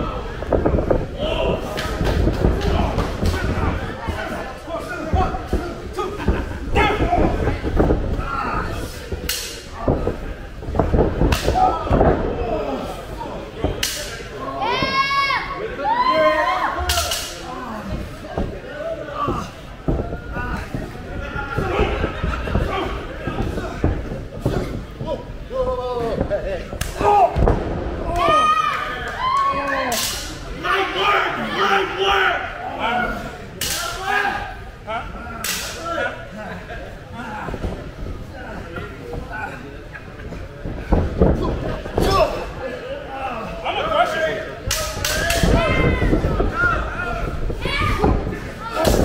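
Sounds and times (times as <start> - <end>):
people shouting: 0.0 - 9.0, 26.9 - 34.6, 44.9 - 49.0.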